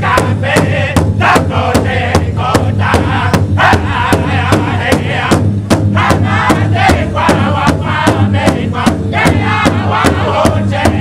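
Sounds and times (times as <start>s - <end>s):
large hide drum beating: 0.0s - 11.0s
men singing loudly together: 0.0s - 11.0s.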